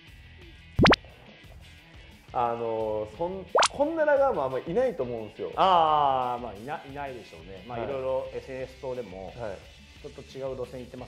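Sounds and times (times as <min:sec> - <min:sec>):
quiet background music: 0:00.1 - 0:11.0
cartoon bloop sound effect: 0:00.8 - 0:01.0, 0:03.6 - 0:03.8.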